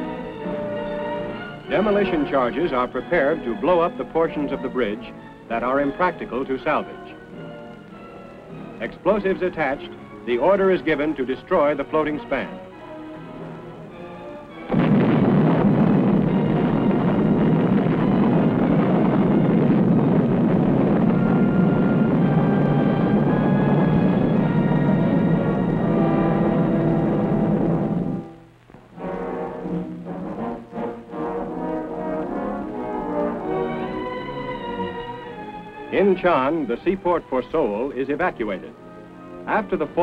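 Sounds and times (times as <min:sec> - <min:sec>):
orchestral music with brass: 0:00.0 - 0:40.0
explosion blast: 0:14.7 - 0:28.3
long loud rumble: 0:14.7 - 0:28.3.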